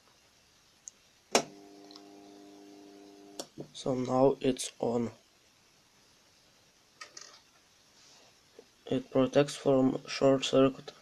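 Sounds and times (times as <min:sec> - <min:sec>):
steady electrical buzz: 0:01.3 - 0:05.2.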